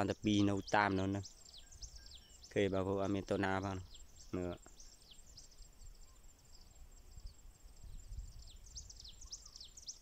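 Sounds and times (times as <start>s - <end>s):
high bird chirps: 0.0s - 10.0s
wind rumble on microphone: 5.3s - 10.0s.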